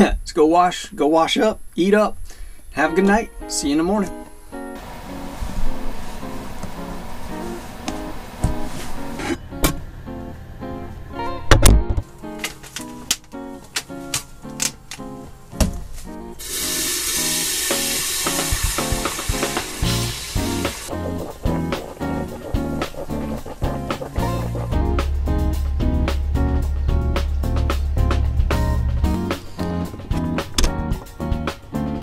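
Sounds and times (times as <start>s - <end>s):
plucked guitar music: 2.9s - 32.0s
water pouring from plastic jug: 16.4s - 24.7s.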